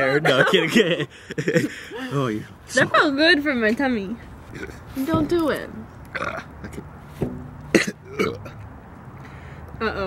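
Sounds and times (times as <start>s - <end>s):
person hiccup-like burp: 6.1s - 6.5s, 7.7s - 8.6s.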